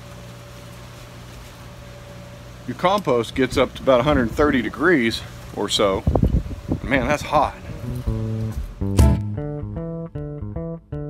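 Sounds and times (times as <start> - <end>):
low mechanical hum: 0.0 - 9.2.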